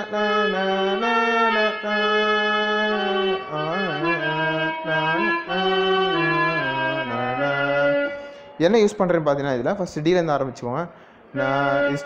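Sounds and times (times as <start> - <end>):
electronic keyboard melody: 0.0 - 9.2.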